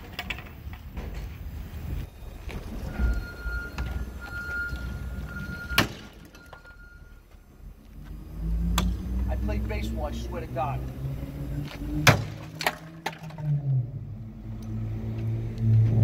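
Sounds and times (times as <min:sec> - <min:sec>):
crowbar striking car body: 0:12.0 - 0:13.4.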